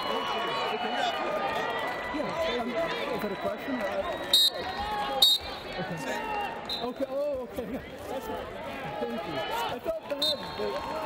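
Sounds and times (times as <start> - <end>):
arena crowd noise: 0.0 - 11.0
shrill referee whistle blasts: 4.2 - 5.6.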